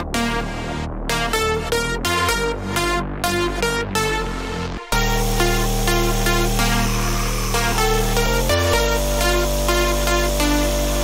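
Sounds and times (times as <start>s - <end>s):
held synth bass: 0.0s - 11.0s
short repeating synth melody: 4.9s - 11.0s.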